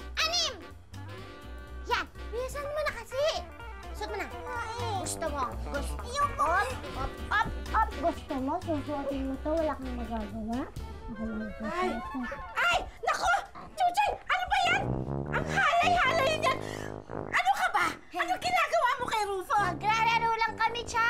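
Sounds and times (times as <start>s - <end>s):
background music: 0.0s - 21.0s.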